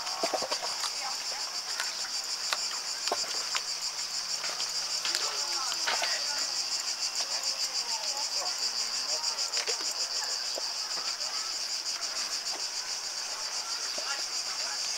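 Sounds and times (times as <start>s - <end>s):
cicadas buzzing: 0.0s - 14.9s.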